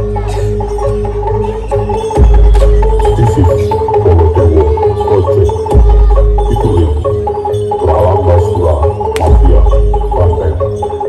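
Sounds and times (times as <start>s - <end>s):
gamelan-style metal percussion: 0.0s - 11.0s.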